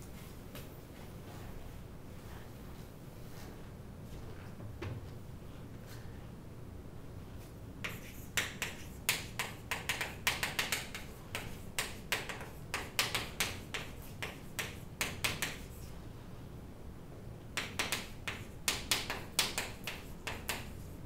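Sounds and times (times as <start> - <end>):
chalk tapping and scratching: 7.8 - 16.0, 17.6 - 21.0.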